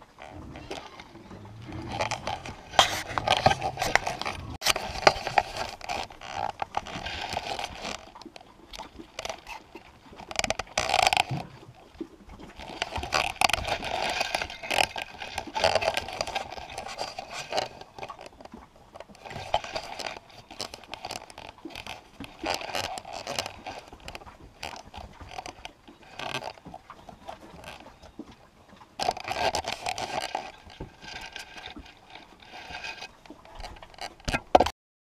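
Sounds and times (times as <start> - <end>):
scraping and rustling on microphone: 0.0 - 28.4, 29.0 - 34.7.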